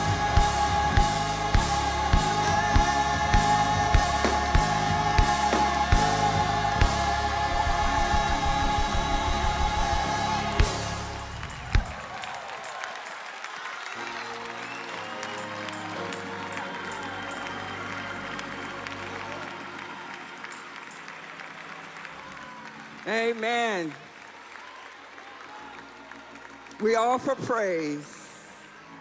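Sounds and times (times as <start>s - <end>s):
choir and band playing: 0.0s - 22.7s
applause and cheering: 0.0s - 29.0s.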